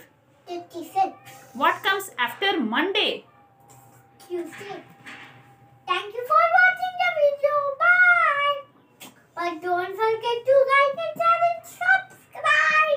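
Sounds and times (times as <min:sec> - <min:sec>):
child singing: 0:06.1 - 0:08.7, 0:09.4 - 0:12.9.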